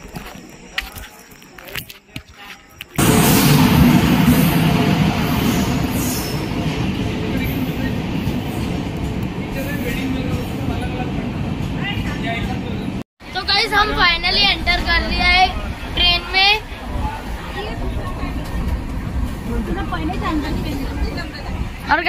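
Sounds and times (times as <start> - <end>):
train wheels rumbling: 3.0 - 22.0
people's voices: 7.0 - 22.0.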